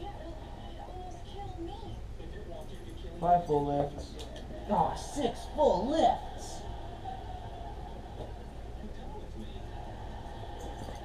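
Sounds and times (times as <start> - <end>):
low room hum: 0.0 - 11.0
muffled television dialogue: 0.0 - 11.0.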